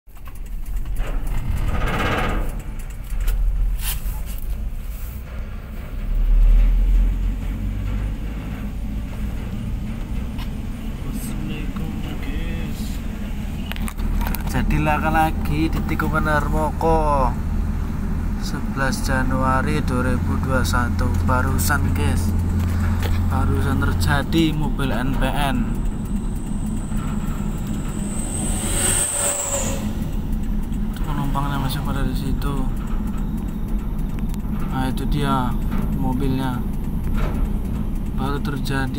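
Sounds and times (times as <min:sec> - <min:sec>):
car engine and road rumble: 0:00.0 - 0:38.9
thin high whine: 0:25.5 - 0:31.7.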